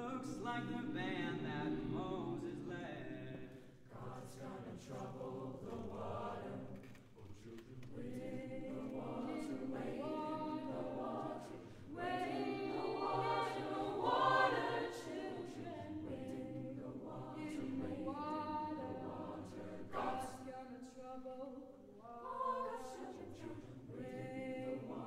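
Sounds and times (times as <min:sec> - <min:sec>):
choir singing held chords: 0:00.0 - 0:20.9, 0:22.0 - 0:25.0.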